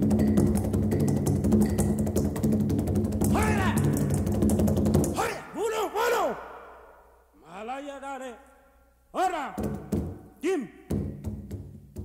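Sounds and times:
hand drums fast rhythm: 0:00.0 - 0:05.2, 0:10.9 - 0:12.0
shouted vocal calls: 0:03.3 - 0:04.0, 0:05.1 - 0:07.2.

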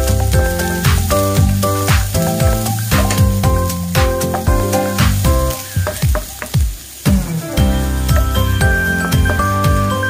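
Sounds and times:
background music with a beat: 0:00.0 - 0:10.0
onion sizzling in a wok: 0:00.0 - 0:10.0.

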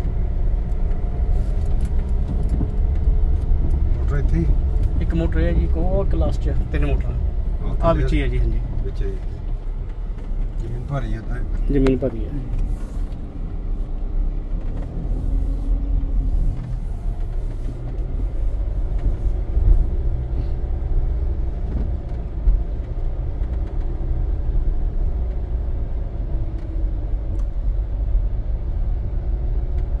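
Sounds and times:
car engine and tyres rumbling: 0:00.0 - 0:30.0.

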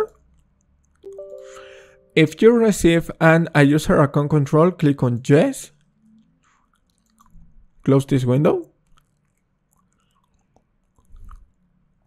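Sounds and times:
person speaking: 0:01.1 - 0:05.7
mouth clicks and lip noises: 0:05.7 - 0:12.0.

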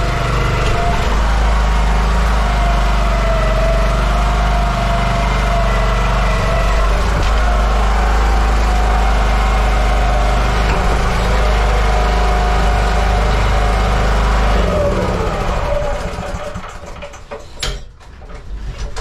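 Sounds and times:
small gasoline engine running: 0:00.0 - 0:17.3.

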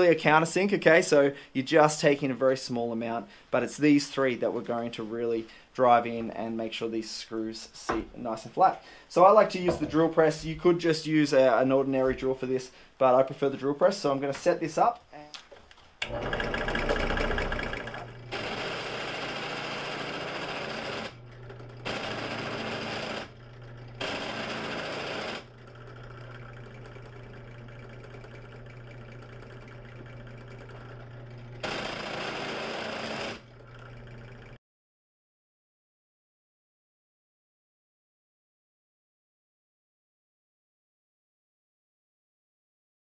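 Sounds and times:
drill bit grinding into metal: 0:16.0 - 0:26.4, 0:30.7 - 0:34.1
drill press motor humming: 0:16.0 - 0:34.6.

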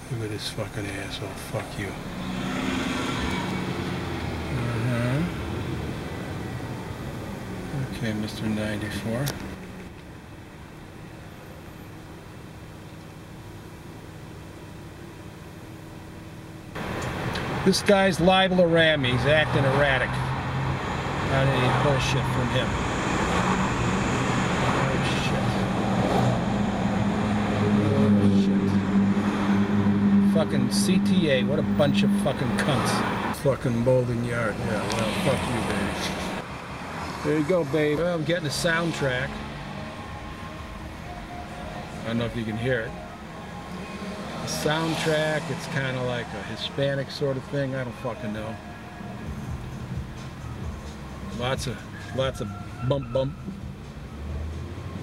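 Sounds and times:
car engine running: 0:00.0 - 0:36.5
traffic noise: 0:00.0 - 0:55.0
low engine drone: 0:21.2 - 0:36.5.

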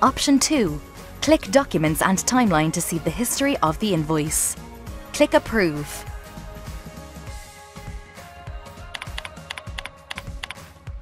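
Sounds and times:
background music with beat: 0:00.0 - 0:11.0
computer keyboard typing: 0:08.9 - 0:10.6.

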